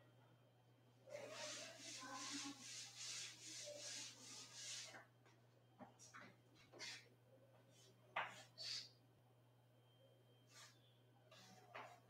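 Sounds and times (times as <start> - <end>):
duster rubbing on a board: 1.2 - 5.0, 8.3 - 8.9, 10.5 - 12.0.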